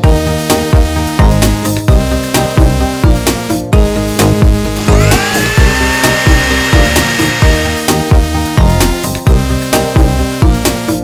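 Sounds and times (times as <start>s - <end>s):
electronic music with beat: 0.0s - 11.0s
blender motor whine: 4.8s - 8.2s.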